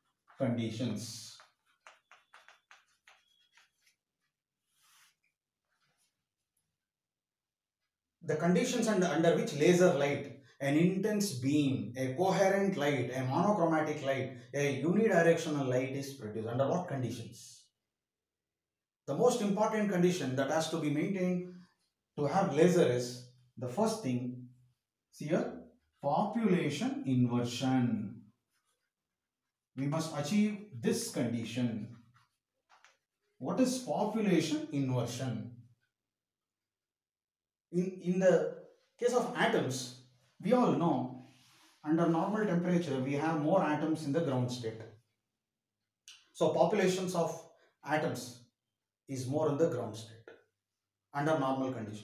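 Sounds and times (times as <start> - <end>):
man speaking: 0.4 - 1.4, 8.3 - 17.5, 19.1 - 21.4, 22.2 - 24.3, 25.2 - 28.1, 29.8 - 31.9, 33.4 - 35.4, 37.8 - 38.4, 39.0 - 41.0, 41.8 - 44.8, 46.4 - 48.3, 49.1 - 50.2, 51.2 - 52.0
high chalk squeak: 1.8 - 4.0.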